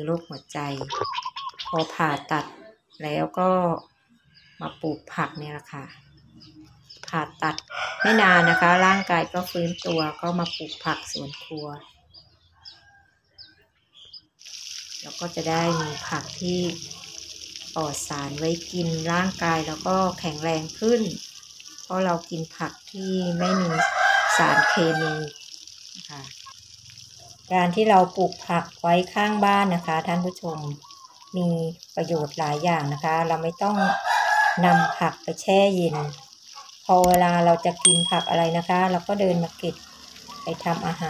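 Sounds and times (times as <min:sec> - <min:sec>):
woman speaking: 0:00.0 - 0:01.0, 0:01.7 - 0:03.8, 0:04.6 - 0:06.0, 0:07.0 - 0:11.9, 0:15.0 - 0:16.8, 0:17.8 - 0:21.2, 0:21.9 - 0:25.3, 0:26.0 - 0:26.3, 0:27.5 - 0:30.8, 0:31.4 - 0:34.0, 0:34.6 - 0:36.1, 0:36.9 - 0:39.8, 0:40.5 - 0:41.0
rooster crowing: 0:07.7 - 0:09.0, 0:23.4 - 0:25.2, 0:33.8 - 0:35.0
water poured onto soil: 0:14.4 - 0:23.0, 0:23.7 - 0:34.1, 0:35.0 - 0:41.0.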